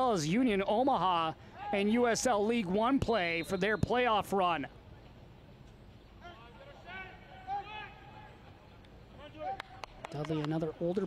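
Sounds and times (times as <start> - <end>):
stadium ambience: 0.0 - 11.0.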